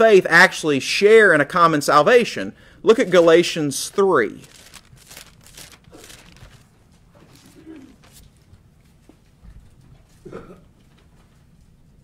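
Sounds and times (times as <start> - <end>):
thin pages rustling: 3.0 - 8.5.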